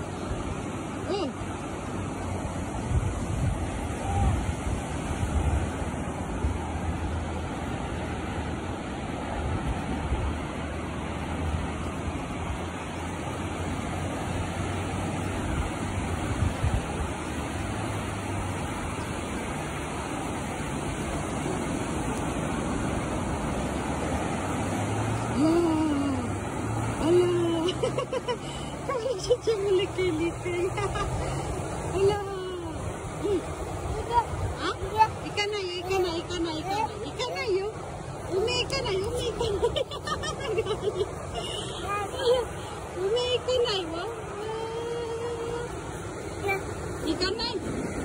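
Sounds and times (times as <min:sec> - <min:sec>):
ocean surf breaking: 0:00.0 - 0:48.0.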